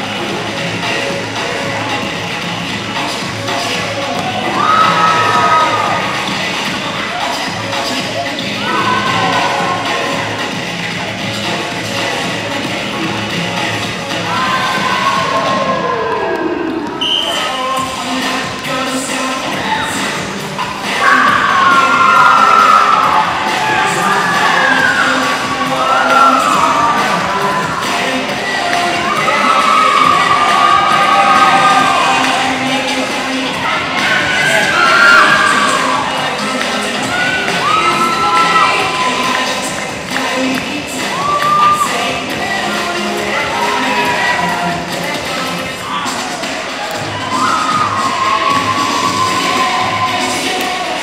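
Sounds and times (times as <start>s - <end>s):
dance music over loudspeaker: 0.0s - 51.0s
children cheering and shouting: 4.4s - 6.4s, 8.6s - 10.4s, 14.2s - 16.8s, 19.5s - 51.0s.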